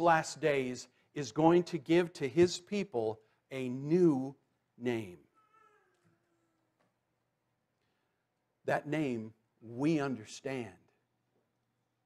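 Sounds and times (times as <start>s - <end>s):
man speaking: 0.0s - 5.3s, 8.6s - 10.9s.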